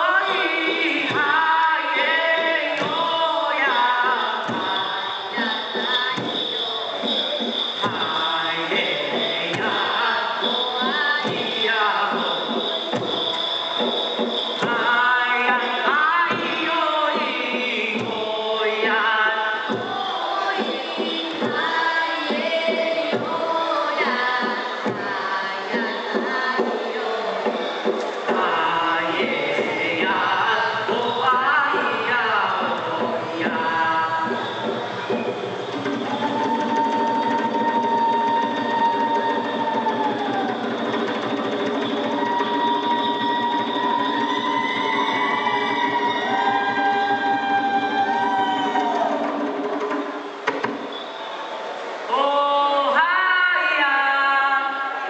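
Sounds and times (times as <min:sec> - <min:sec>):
lower massed voices singing: 0:00.0 - 0:50.4
sung folk chant: 0:00.0 - 0:55.0.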